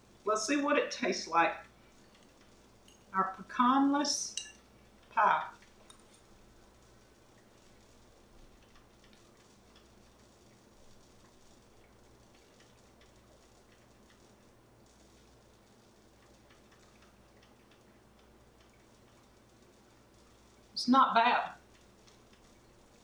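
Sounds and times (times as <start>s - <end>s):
faint low steady hum: 0.0s - 23.0s.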